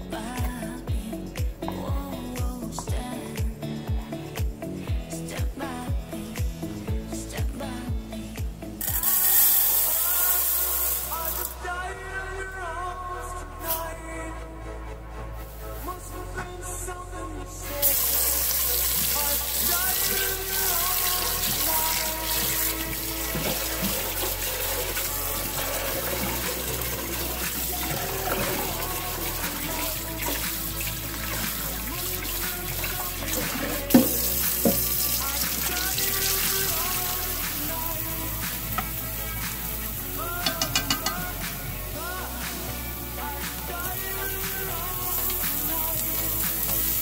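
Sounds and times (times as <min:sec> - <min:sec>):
song playing: 0:00.0 - 0:47.0
tap water running into metal pot: 0:17.9 - 0:38.0, 0:40.4 - 0:41.2.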